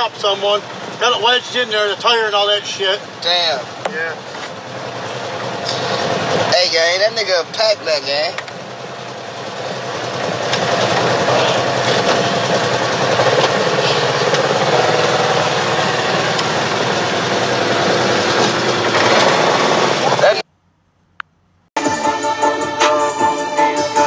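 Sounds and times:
vehicle engine: 0:00.0 - 0:21.7.

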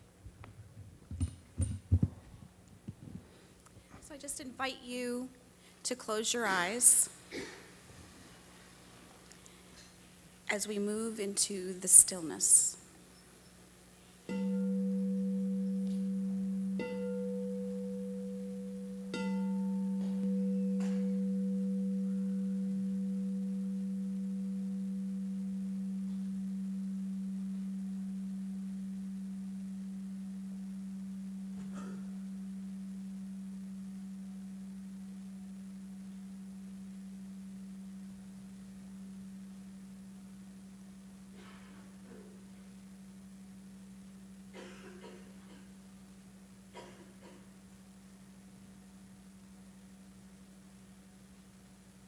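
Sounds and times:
singing bowl ringing: 0:14.3 - 0:40.3.

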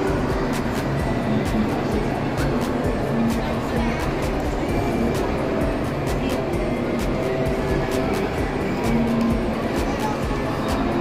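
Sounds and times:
busy hall background noise: 0:00.0 - 0:11.0
music with ticking beat: 0:00.0 - 0:11.0.

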